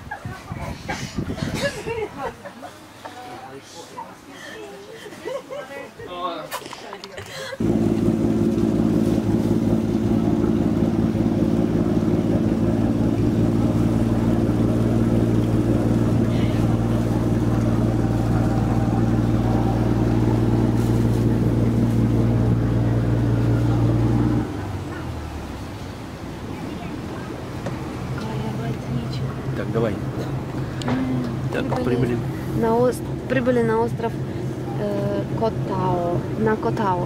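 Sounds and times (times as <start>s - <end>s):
woman laughing: 0.0s - 2.8s
boat engine droning: 7.6s - 37.0s.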